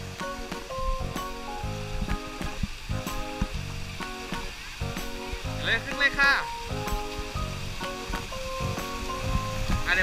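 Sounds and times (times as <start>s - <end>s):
music with steady beat: 0.0s - 10.0s
water spraying and splashing: 0.0s - 10.0s.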